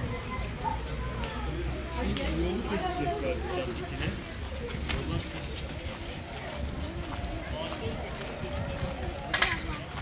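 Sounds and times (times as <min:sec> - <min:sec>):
adults and children talking: 0:00.0 - 0:10.0.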